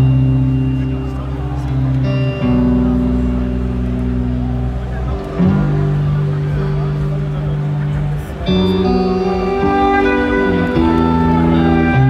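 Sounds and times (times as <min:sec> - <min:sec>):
live band holding a chord: 0:00.0 - 0:12.0.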